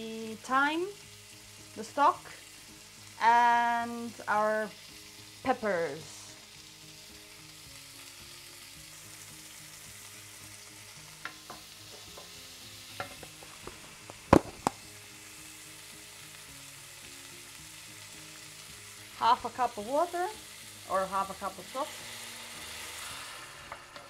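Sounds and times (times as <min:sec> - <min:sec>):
vegetables sizzling in a pan: 0:00.0 - 0:24.0
spoon knocking against pan: 0:11.2 - 0:12.4, 0:13.0 - 0:13.8.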